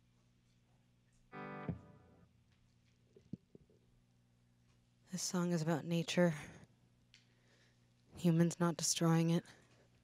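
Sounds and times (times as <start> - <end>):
faint amplifier hum: 0.0 - 10.0
electric guitar chord: 1.3 - 2.3.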